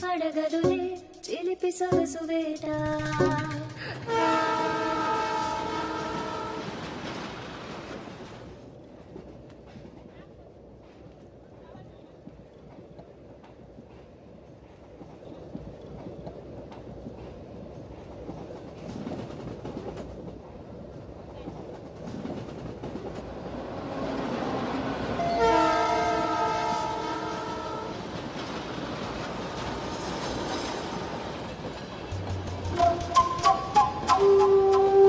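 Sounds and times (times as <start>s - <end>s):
train rumbling: 0.0s - 35.0s
train horn blast: 4.0s - 6.8s, 25.2s - 28.0s, 32.7s - 35.0s.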